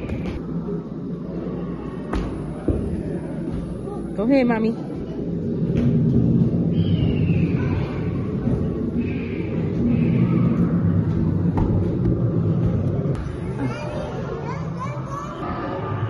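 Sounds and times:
low droning hall ambience: 0:00.0 - 0:16.0.

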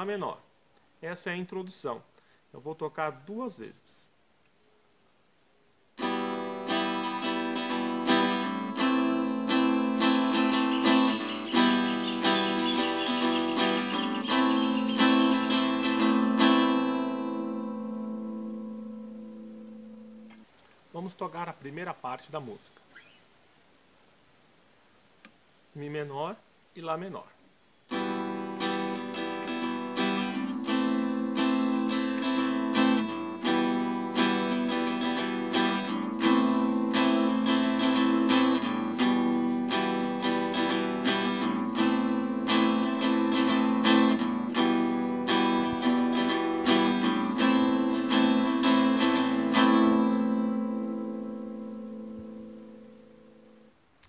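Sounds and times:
guitar strumming chords: 0:06.0 - 0:20.4, 0:27.9 - 0:53.8.

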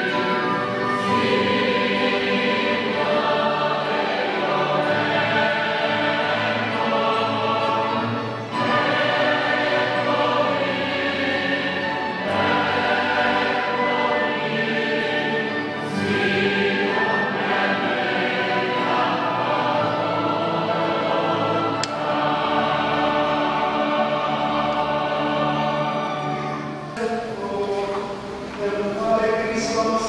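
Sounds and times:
choir singing a hymn: 0:00.0 - 0:30.0.

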